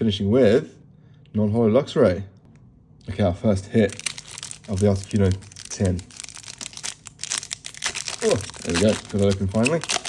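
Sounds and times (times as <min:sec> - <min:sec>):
foil wrapper crinkling and tearing: 0:03.8 - 0:10.0.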